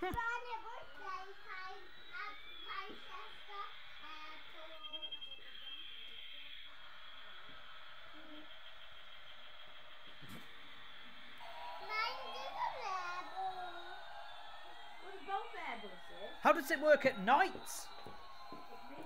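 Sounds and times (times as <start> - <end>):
toy electronic whine: 0.0 - 19.0
young child's voice: 11.8 - 13.8.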